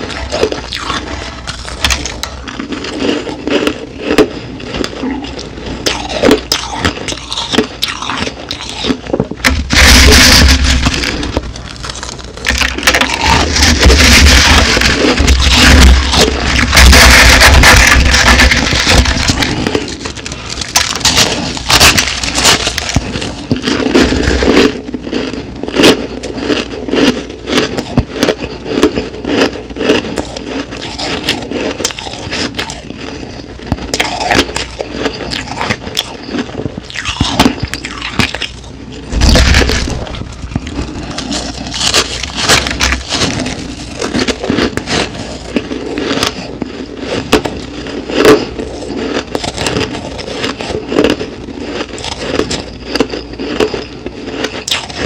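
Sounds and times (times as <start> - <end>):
crushed ice crunching: 0.0 - 55.0.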